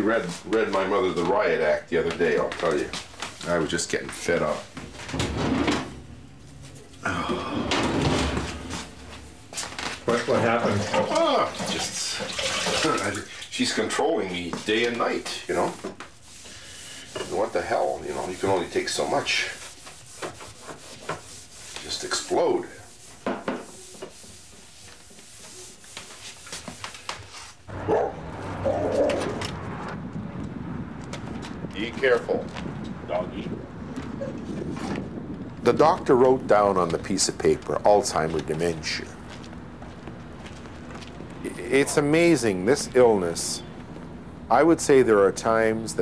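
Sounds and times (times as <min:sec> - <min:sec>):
man sighing: 0:07.0 - 0:07.8
clatter and rubbing on counter: 0:07.8 - 0:13.2, 0:14.4 - 0:27.6
bark-like calls: 0:27.7 - 0:29.4.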